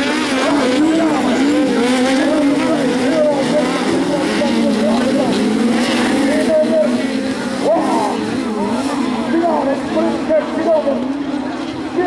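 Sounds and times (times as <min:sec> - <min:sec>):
race car engines revving: 0:00.0 - 0:12.0.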